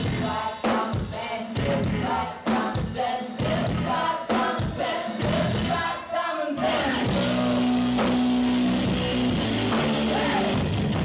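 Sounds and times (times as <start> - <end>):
rock band playing: 0.0 - 5.8, 6.6 - 11.0.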